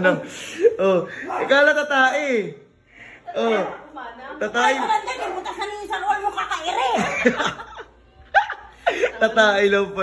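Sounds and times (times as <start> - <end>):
people laughing: 6.7 - 9.5.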